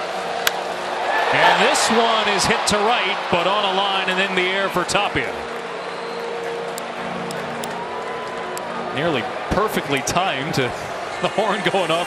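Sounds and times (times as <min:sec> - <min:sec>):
crowd hubbub: 0:05.2 - 0:12.0.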